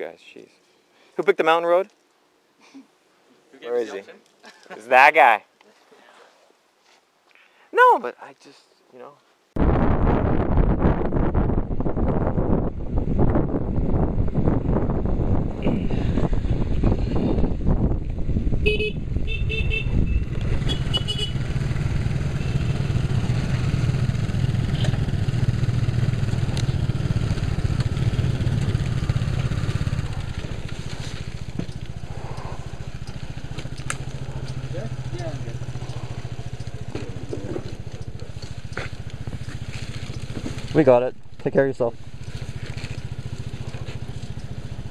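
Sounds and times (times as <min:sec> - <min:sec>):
wind buffeting microphone: 0:09.6 - 0:22.2
motor scooter engine running: 0:18.6 - 0:40.8, 0:42.0 - 0:44.9.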